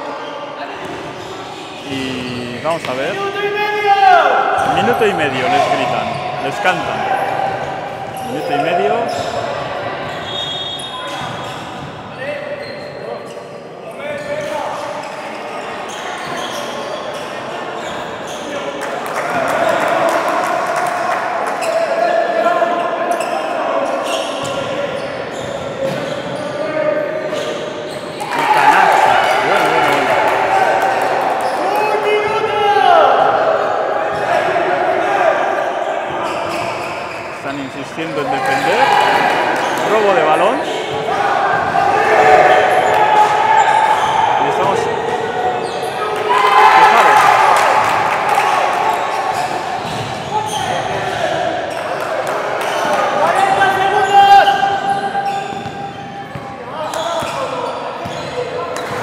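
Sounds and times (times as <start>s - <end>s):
voices calling out: 1.2s - 11.7s
basketball bouncing on court: 49.3s - 50.7s, 55.2s - 56.6s.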